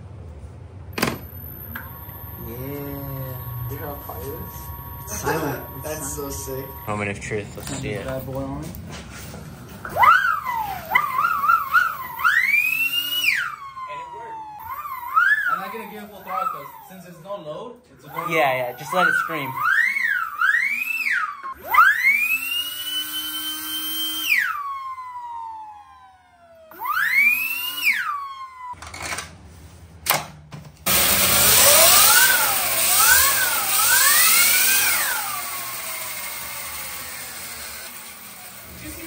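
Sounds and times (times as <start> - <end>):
electric motor whining: 1.0 - 8.8, 9.7 - 17.2, 18.0 - 28.8, 30.9 - 39.0.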